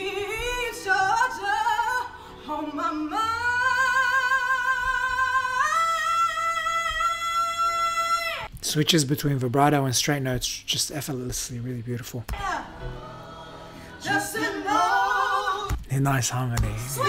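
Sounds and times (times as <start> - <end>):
woman and man singing a duet: 0.0 - 8.5, 12.3 - 17.0.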